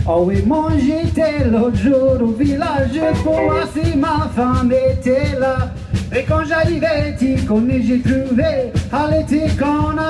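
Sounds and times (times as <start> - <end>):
man singing lead: 0.1 - 10.0
live band playing: 0.5 - 10.0.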